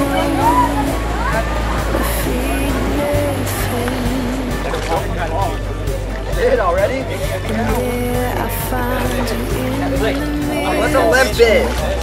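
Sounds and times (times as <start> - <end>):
held bass notes: 0.0 - 12.0
sustained melody line: 0.0 - 12.0.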